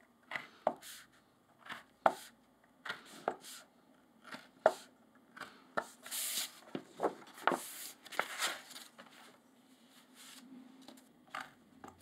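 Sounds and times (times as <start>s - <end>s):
paper rustling: 6.1s - 9.4s.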